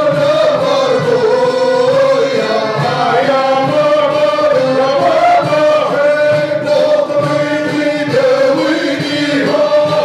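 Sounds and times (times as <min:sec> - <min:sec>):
frame drums beat: 0:00.0 - 0:10.0
men's chorus chanting: 0:00.0 - 0:10.0.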